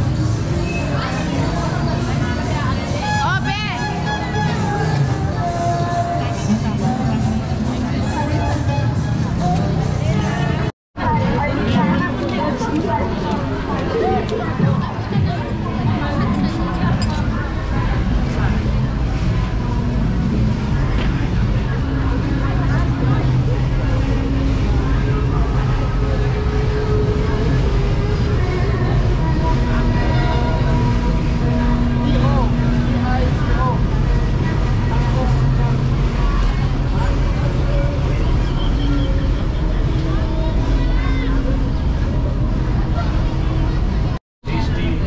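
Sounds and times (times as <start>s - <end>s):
crowd voices: 0.0s - 45.0s
low rumble of vehicles: 0.0s - 45.0s.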